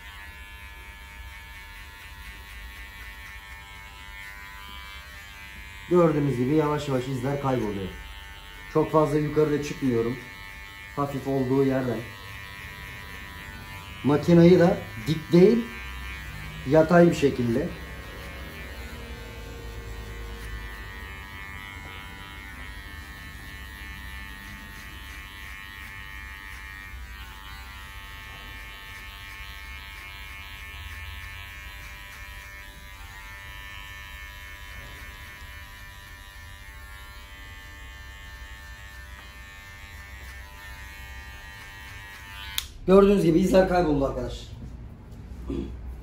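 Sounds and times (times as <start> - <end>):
electric hair clipper buzzing: 0.0 - 43.7.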